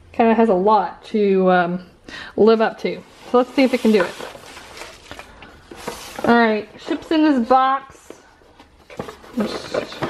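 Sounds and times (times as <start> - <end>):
cardboard rubbing: 3.0 - 7.2.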